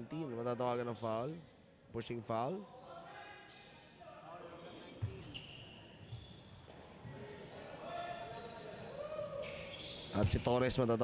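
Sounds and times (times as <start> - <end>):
faint echoing voices: 6.6 - 11.0.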